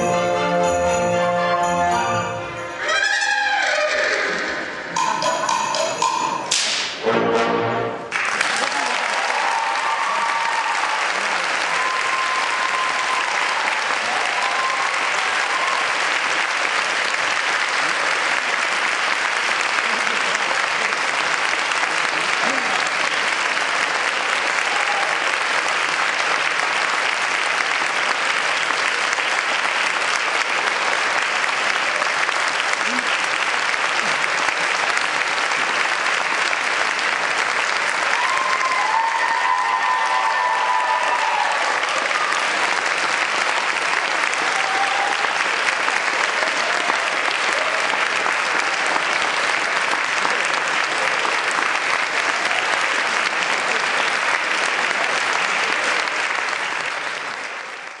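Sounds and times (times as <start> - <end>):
audience applauding: 2.8 - 58.0.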